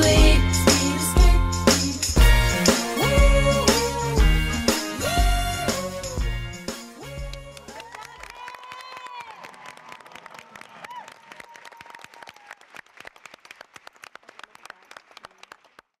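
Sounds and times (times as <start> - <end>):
audience applause: 7.6 - 16.0.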